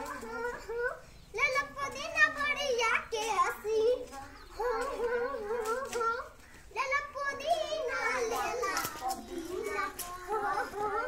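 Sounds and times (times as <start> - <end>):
boys talking: 0.0 - 11.0
child talking: 0.0 - 11.0.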